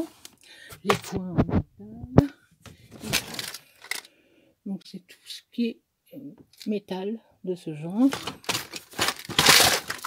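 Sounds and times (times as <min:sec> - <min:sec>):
metal pieces rattling in box: 0:03.1 - 0:04.1, 0:08.1 - 0:10.0.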